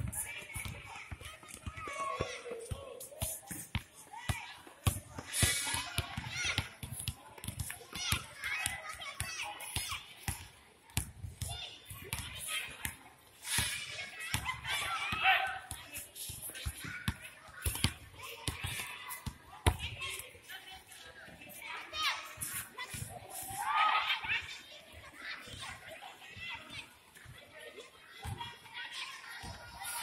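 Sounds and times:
basketball bouncing on concrete: 0.0s - 13.0s, 15.1s - 20.0s
children chattering and calling: 0.0s - 30.0s.

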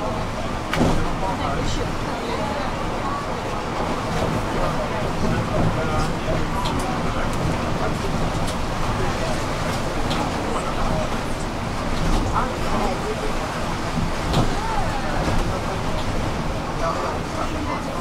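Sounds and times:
bus rumble: 0.0s - 18.0s
passengers talking indistinctly: 0.0s - 18.0s.

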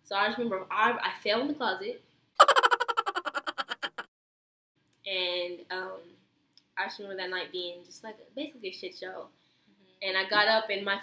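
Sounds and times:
comic pitched pulses: 2.4s - 4.1s.

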